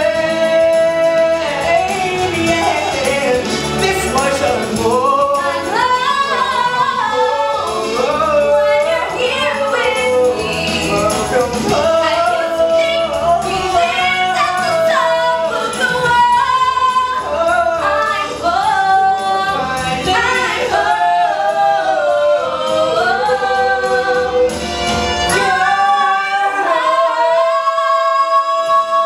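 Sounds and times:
man and woman singing duet: 0:00.0 - 0:29.0
musical accompaniment: 0:00.0 - 0:29.0.

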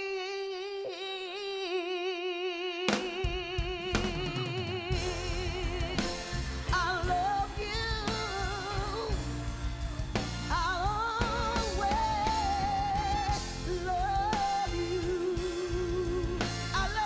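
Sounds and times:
woman singing soul: 0:00.0 - 0:17.0
band drums and bass: 0:02.9 - 0:17.0.

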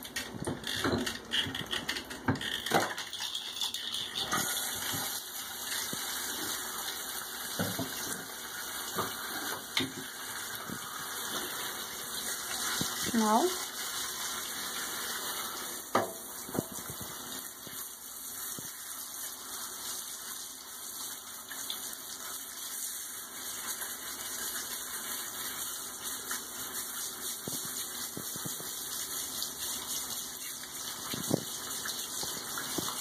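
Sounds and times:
shower sprayer hissing: 0:04.2 - 0:33.0.

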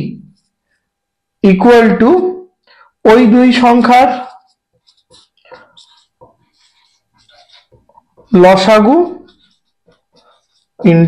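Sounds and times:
marker scratching on whiteboard: 0:03.1 - 0:11.0.

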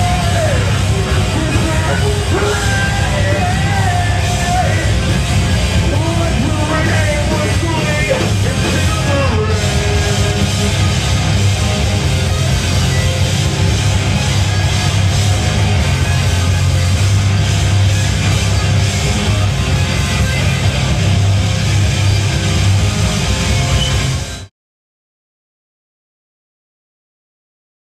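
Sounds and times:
screamo band playing live: 0:00.0 - 0:24.5.

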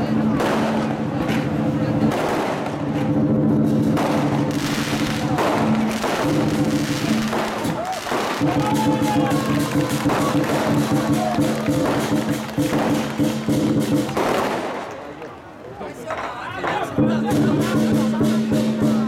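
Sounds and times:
war drum beating fast: 0:04.2 - 0:14.6, 0:17.0 - 0:19.0.

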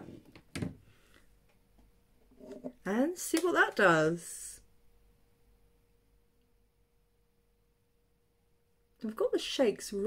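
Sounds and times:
person speaking: 0:02.4 - 0:04.6.

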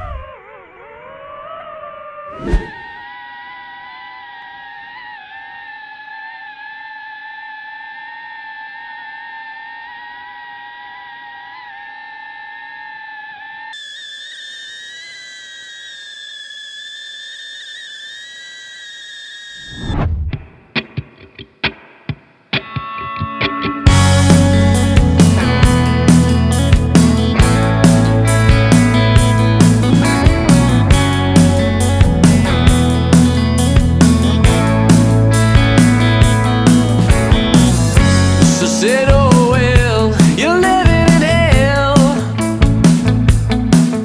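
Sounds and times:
drone propellers whining: 0:00.0 - 0:20.6, 0:23.9 - 0:44.0.

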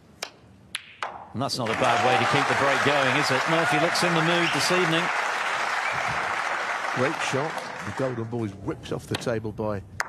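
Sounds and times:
crowd clapping: 0:01.6 - 0:08.5.

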